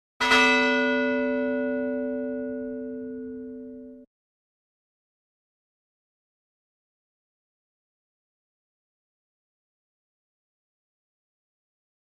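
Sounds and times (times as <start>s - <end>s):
bell ringing: 0.2s - 4.1s.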